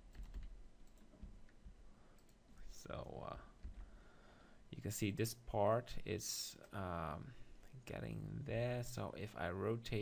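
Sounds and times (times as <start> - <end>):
computer keyboard keystrokes: 0.1 - 1.4.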